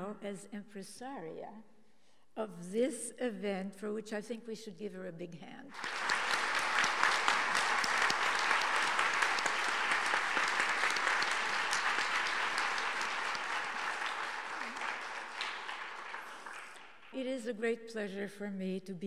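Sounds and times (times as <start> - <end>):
audience applauding: 5.7 - 17.2.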